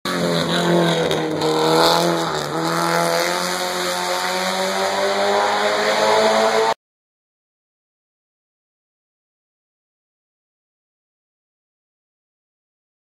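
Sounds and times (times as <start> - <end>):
race car engine revving: 0.1 - 6.8.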